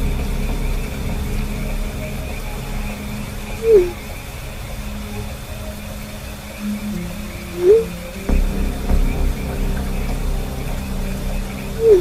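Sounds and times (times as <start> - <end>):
dark ambient music with drone: 0.0 - 12.0.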